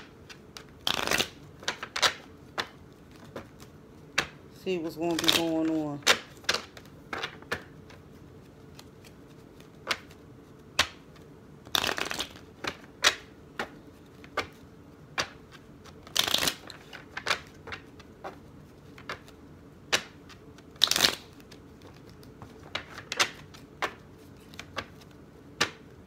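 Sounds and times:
cards being shuffled: 0.0 - 26.0.

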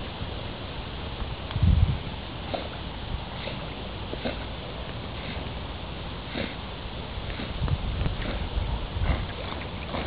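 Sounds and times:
water noise: 0.0 - 10.0
dog breathing hard through nose: 2.5 - 4.4, 5.2 - 5.5, 6.2 - 7.6.

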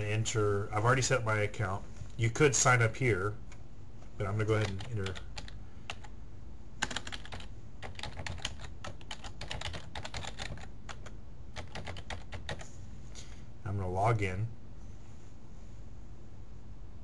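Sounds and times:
computer keyboard typing: 4.5 - 6.1, 6.8 - 12.6.

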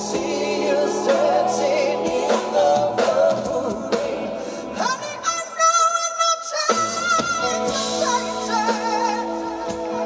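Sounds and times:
bass guitar and keyboards: 0.0 - 10.0
person singing live: 0.0 - 10.0.

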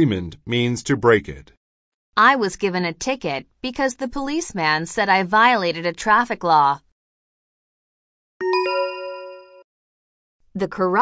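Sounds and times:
two-note chime: 8.4 - 9.6.

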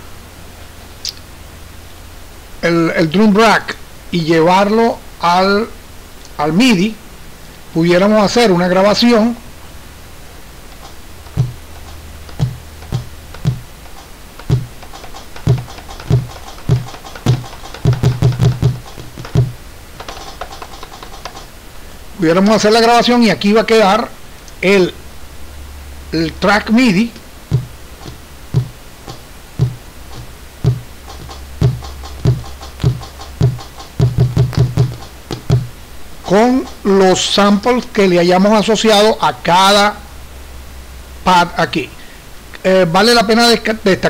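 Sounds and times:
low drum strokes with clicks: 10.7 - 21.5, 27.2 - 36.9
low drum hits: 11.3 - 11.6, 12.3 - 13.7, 29.6 - 35.8.

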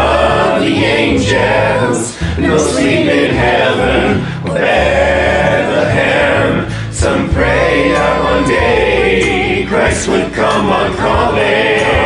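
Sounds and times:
man singing in choral harmony: 0.0 - 12.0.

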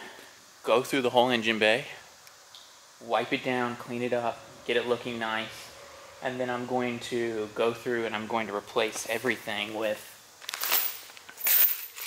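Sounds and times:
plastic bag crinkling: 10.4 - 12.0.

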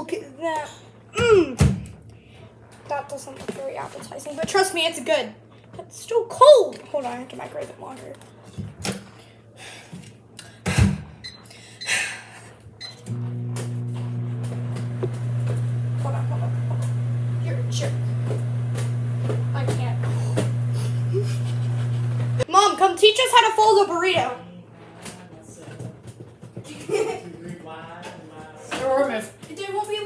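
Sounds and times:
microwave oven humming: 10.3 - 22.6.

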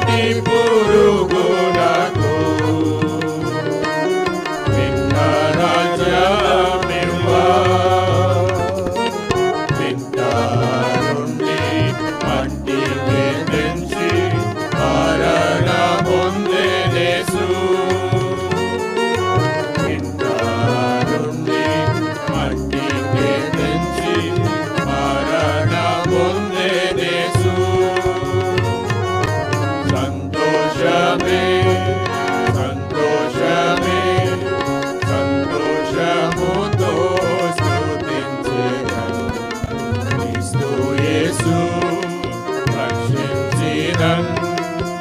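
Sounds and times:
men singing a hymn together: 0.0 - 3.9, 4.7 - 45.0
electronic keyboard: 0.0 - 45.0.

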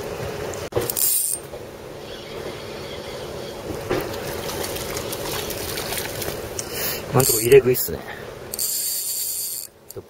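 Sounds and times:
faint water sounds: 1.6 - 10.0.

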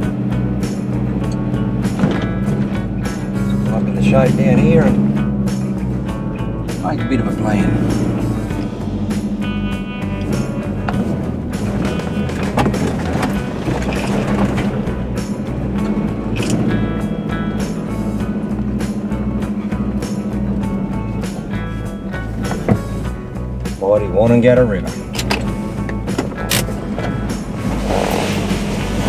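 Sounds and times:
background music with steady beat: 0.0 - 29.0.

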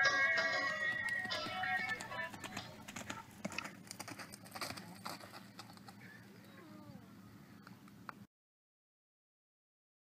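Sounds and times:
hoofbeats on dirt: 0.0 - 6.2
faint gliding animal call: 6.0 - 7.6.

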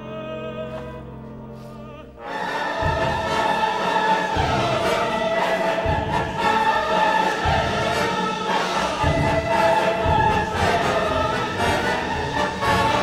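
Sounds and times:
opera chorus singing: 0.0 - 13.0
orchestra playing: 0.0 - 13.0
low orchestral stroke: 2.2 - 13.0.

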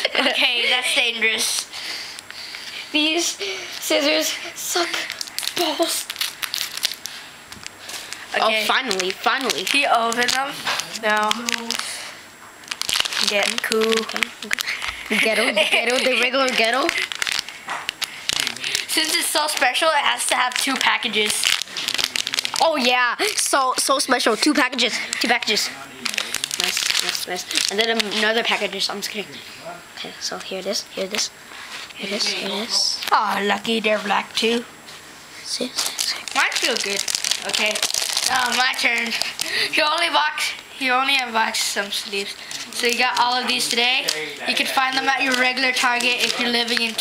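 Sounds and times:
plastic packaging crinkling: 3.7 - 29.1, 35.6 - 47.0.

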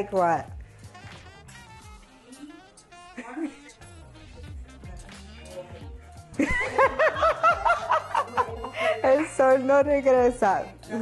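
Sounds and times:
woman laughing: 3.0 - 3.8, 6.4 - 9.3.

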